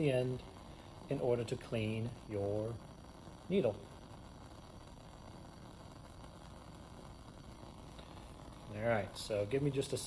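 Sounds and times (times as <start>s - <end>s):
burner flame hissing: 0.0s - 10.0s.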